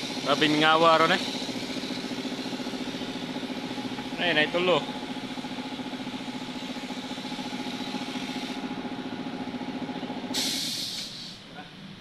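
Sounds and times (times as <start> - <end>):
pressure washer pump humming: 0.0 - 11.4.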